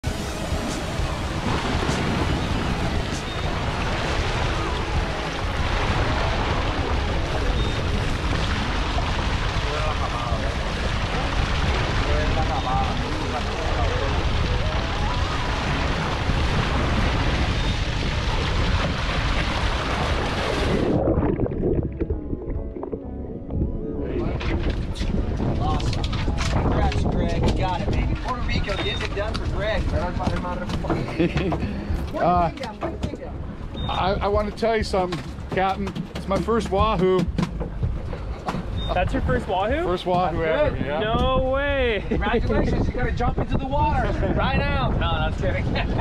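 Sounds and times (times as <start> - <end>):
boat underway: 0.0 - 46.0
rush of open sea: 0.0 - 46.0
wind buffeting microphone: 0.0 - 46.0.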